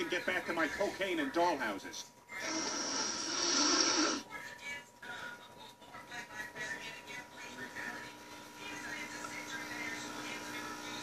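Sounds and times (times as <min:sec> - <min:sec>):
noisy sniff through the nose: 0:02.4 - 0:04.3.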